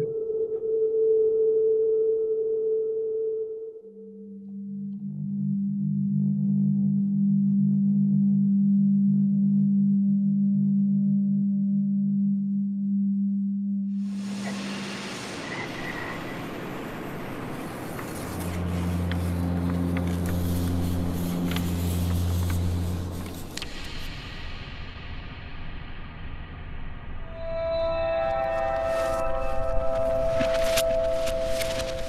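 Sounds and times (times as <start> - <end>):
deep sustained tones: 3.8 - 23.9, 27.2 - 32.0
low drone: 14.0 - 32.0
rushing noise: 14.0 - 32.0.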